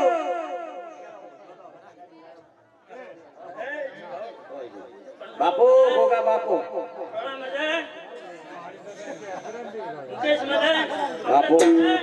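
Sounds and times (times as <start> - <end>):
men talking at once: 0.0 - 12.0.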